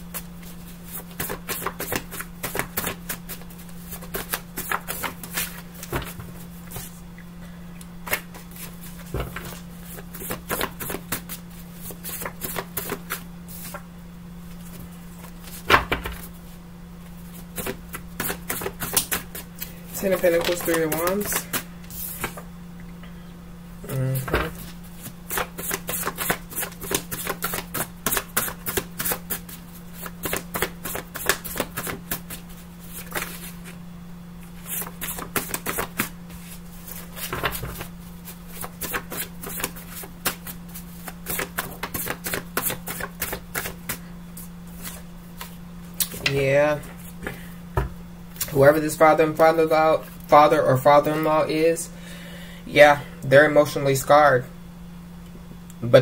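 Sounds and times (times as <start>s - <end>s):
steady low hum: 0.0s - 56.0s
cards being shuffled: 0.1s - 7.0s, 8.0s - 13.8s, 17.6s - 22.5s, 24.2s - 33.8s, 34.6s - 47.3s
person humming: 23.8s - 24.6s.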